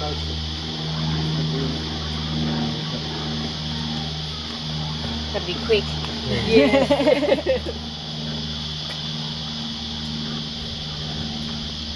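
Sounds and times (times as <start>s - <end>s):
high-pitched insect drone: 0.0s - 11.9s
low hum: 0.0s - 11.9s.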